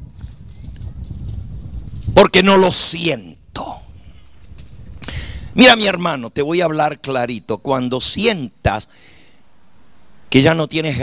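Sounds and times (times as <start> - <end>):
faint hiss: 2.0 - 11.0.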